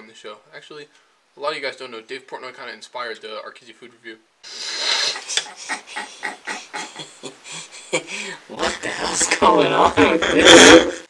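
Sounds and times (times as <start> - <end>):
man's stifled laughter: 4.8 - 8.8.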